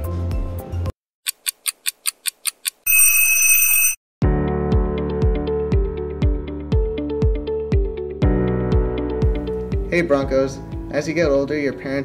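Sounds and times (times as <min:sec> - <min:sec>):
fast digital clock ticking: 0:01.3 - 0:03.2
high electronic alarm tone: 0:02.9 - 0:04.0.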